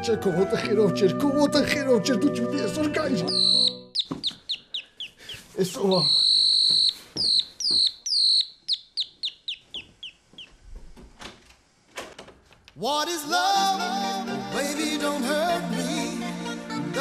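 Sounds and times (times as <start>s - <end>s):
bird-like whistled chirps: 3.2s - 10.2s.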